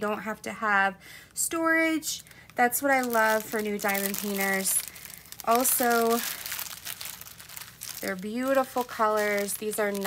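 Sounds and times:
plastic wrapping crinkling: 0:02.0 - 0:10.0.

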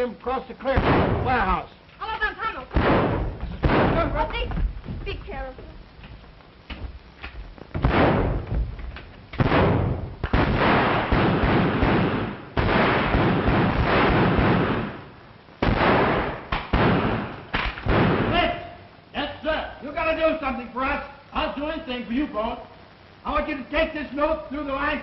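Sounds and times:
gunfire bursts: 0:00.7 - 0:01.5, 0:02.7 - 0:04.3, 0:07.8 - 0:08.5, 0:09.4 - 0:18.6.

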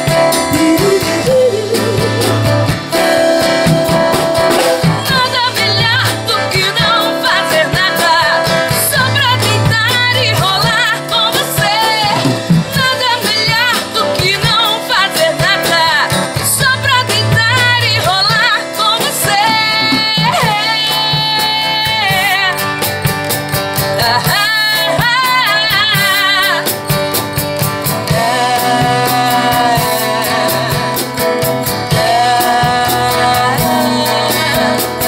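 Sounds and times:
woman singing into a microphone: 0:00.0 - 0:03.6, 0:04.4 - 0:23.1, 0:23.8 - 0:27.2, 0:27.8 - 0:35.0
instrumental backing music: 0:00.0 - 0:35.0.

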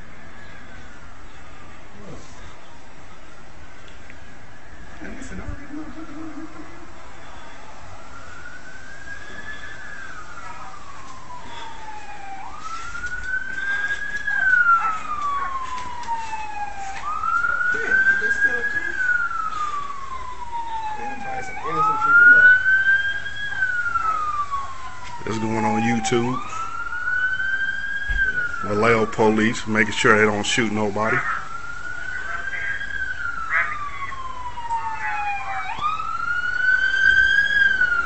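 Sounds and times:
police siren wailing: 0:00.0 - 0:38.0.

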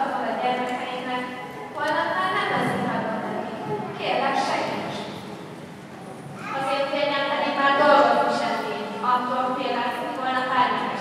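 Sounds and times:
person talking in a large hall: 0:00.0 - 0:11.0.

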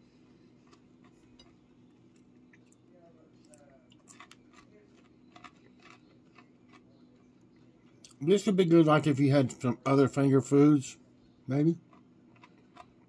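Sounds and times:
chewing crunchy food: 0:00.0 - 0:08.2, 0:11.8 - 0:13.0
faint steady hum: 0:00.0 - 0:13.0.

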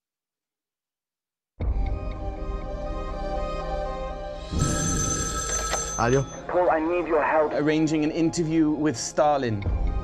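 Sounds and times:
film score music: 0:01.6 - 0:10.0
telephone bell ringing: 0:04.5 - 0:06.8.

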